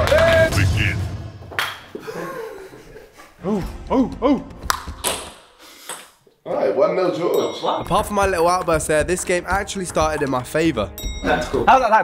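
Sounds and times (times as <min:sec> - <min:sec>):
person calling out: 0:03.4 - 0:04.6.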